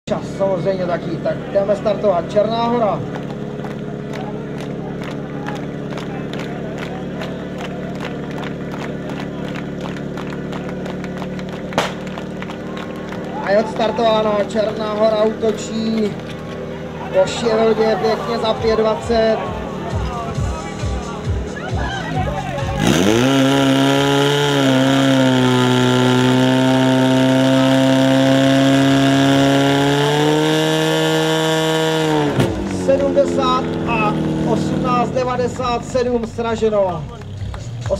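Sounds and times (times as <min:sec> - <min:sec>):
pump engine revving: 0:02.7 - 0:37.9
crowd clapping in rhythm: 0:02.8 - 0:17.0, 0:31.0 - 0:37.9.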